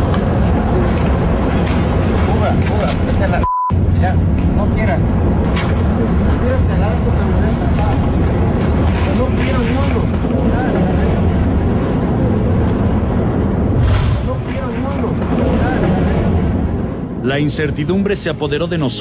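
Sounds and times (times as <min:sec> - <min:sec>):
waves rumbling on shore: 0:00.0 - 0:19.0.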